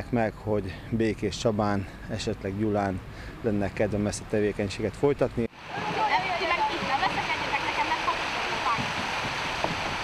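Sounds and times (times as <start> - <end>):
rushing water: 5.4 - 10.0
paddles splashing: 5.5 - 10.0.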